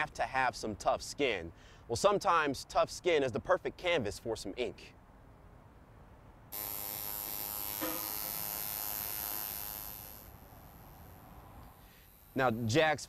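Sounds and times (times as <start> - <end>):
tattoo machine buzzing: 6.5 - 12.8.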